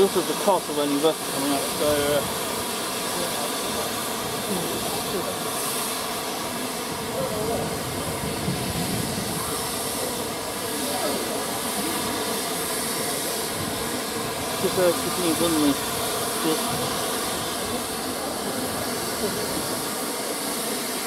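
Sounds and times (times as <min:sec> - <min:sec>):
steam hissing: 0:00.0 - 0:21.0
faint crowd chatter: 0:02.9 - 0:21.0.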